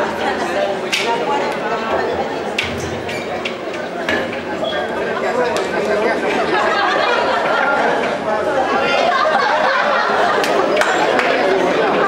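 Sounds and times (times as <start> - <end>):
crowd chatter in a hall: 0.0 - 12.0.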